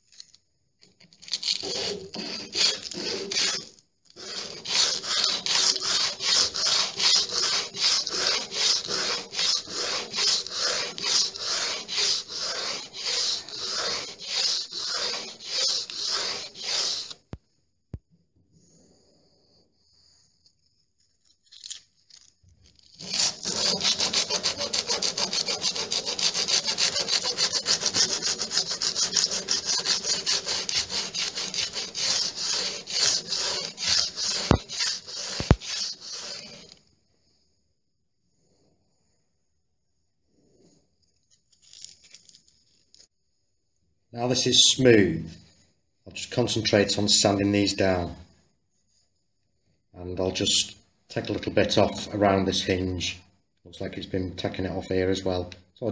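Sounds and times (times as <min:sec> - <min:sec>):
sandpaper rubbing on wood: 0:01.5 - 0:03.6, 0:04.2 - 0:17.2, 0:23.0 - 0:36.6.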